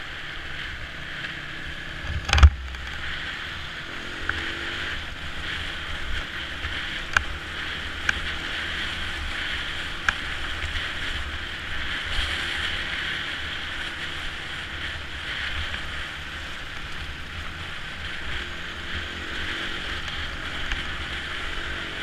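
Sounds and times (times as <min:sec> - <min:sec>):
motorcycle engine rumble: 0:00.0 - 0:22.0
wind and tyre noise: 0:00.0 - 0:22.0.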